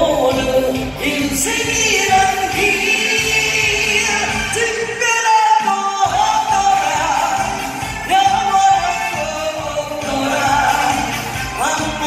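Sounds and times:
backing music: 0:00.0 - 0:12.0
woman singing into microphone: 0:00.0 - 0:12.0.

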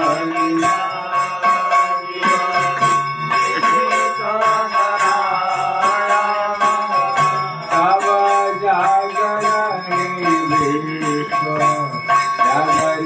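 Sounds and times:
bells ringing rapidly: 0:00.0 - 0:13.0
people singing: 0:00.0 - 0:13.0.

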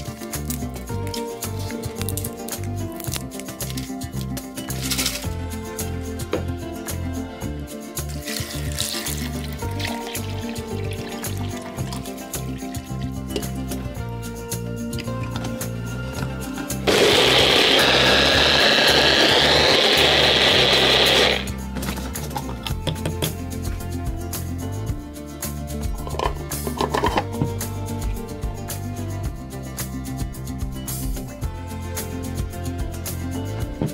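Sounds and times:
background music: 0:00.0 - 0:33.9
blender running with high whine: 0:16.9 - 0:21.5.

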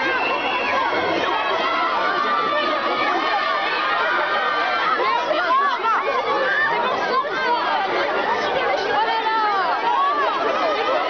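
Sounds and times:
crowd of fans calling out: 0:00.0 - 0:11.0.

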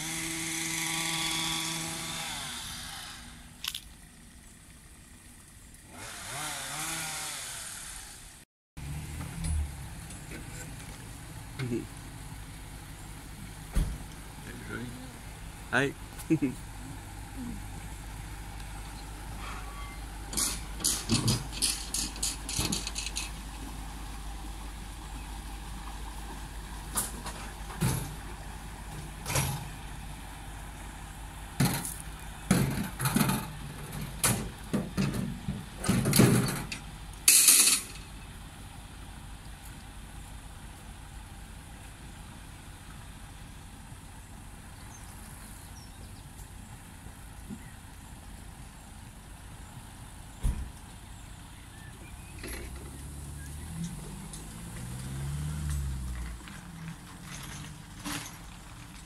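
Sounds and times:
boat engine humming: 0:09.3 - 0:59.0.

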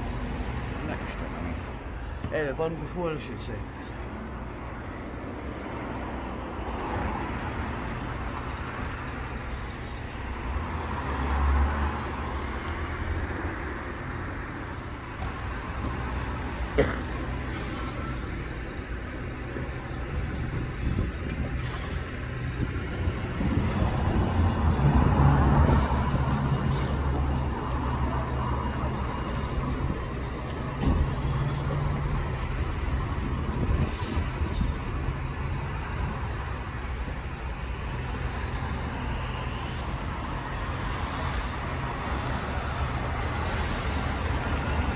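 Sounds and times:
road traffic: 0:00.0 - 0:44.9
heavy vehicle passing: 0:20.9 - 0:44.9.

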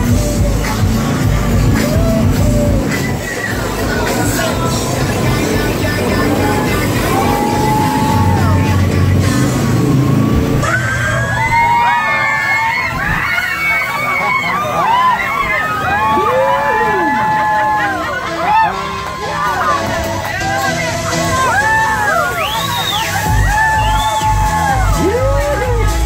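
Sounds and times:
background music: 0:00.0 - 0:26.0
jet boat engine: 0:00.0 - 0:26.0
passengers whooping and screaming: 0:00.0 - 0:26.0
rushing water: 0:00.0 - 0:26.0.

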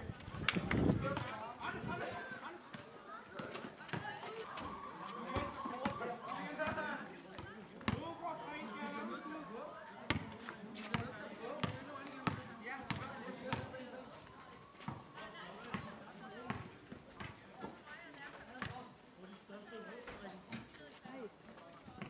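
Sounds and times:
basketball bouncing on pavement: 0:00.6 - 0:01.4, 0:06.6 - 0:08.1, 0:10.1 - 0:13.8, 0:14.8 - 0:17.4, 0:18.6 - 0:18.8
players' voices and shouts: 0:00.6 - 0:19.5.

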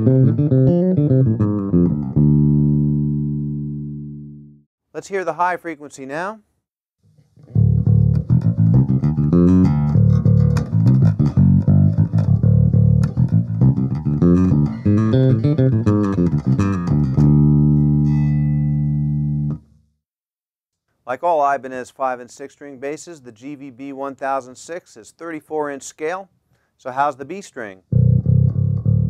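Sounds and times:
electric bass run of notes: 0:00.0 - 0:04.6, 0:07.5 - 0:19.7, 0:28.0 - 0:29.0.

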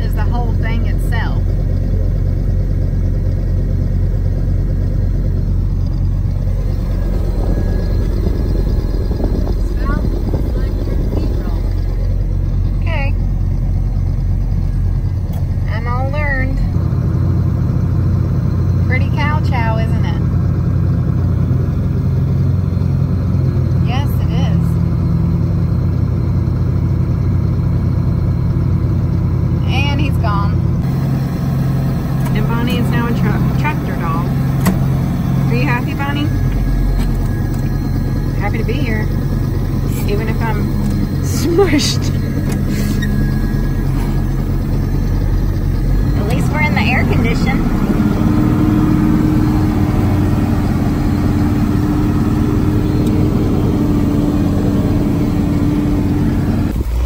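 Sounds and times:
tractor engine running under load: 0:00.0 - 0:57.0.

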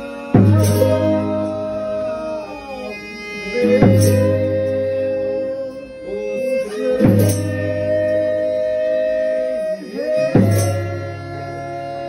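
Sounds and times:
bowed violin: 0:00.0 - 0:12.0
strummed violas: 0:00.0 - 0:12.0.

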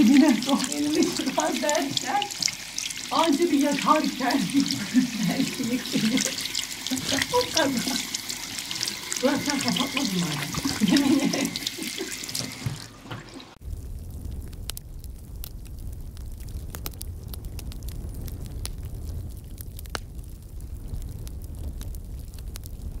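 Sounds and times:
woman laughing: 0:00.0 - 0:02.3, 0:03.1 - 0:08.1, 0:09.2 - 0:12.5
low rumble: 0:13.6 - 0:23.0
sharp clicks and crackles: 0:13.7 - 0:23.0.

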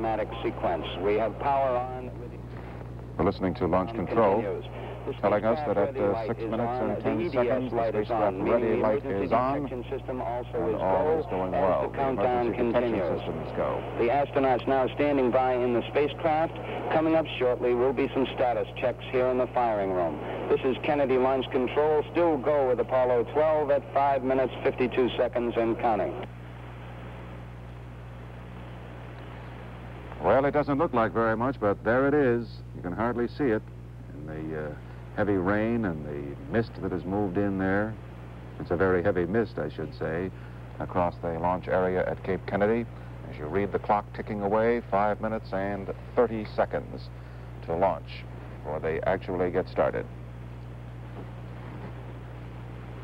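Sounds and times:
low hum: 0:00.0 - 0:53.0.

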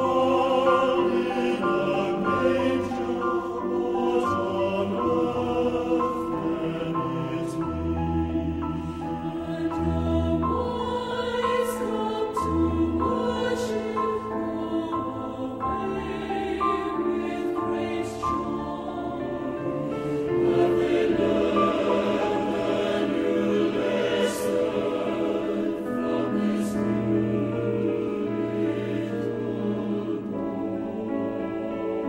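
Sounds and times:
mixed choir singing: 0:00.0 - 0:32.0
piano accompaniment: 0:00.0 - 0:32.0.

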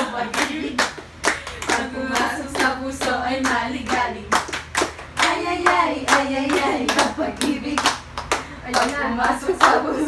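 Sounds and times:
women singing: 0:00.0 - 0:04.6, 0:05.2 - 0:08.0, 0:08.6 - 0:10.0
women clapping in rhythm: 0:00.0 - 0:10.0.

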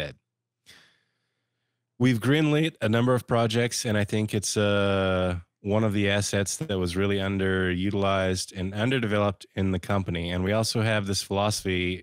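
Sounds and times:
short breath into microphone: 0:00.7 - 0:01.7
person speaking: 0:02.0 - 0:12.0.

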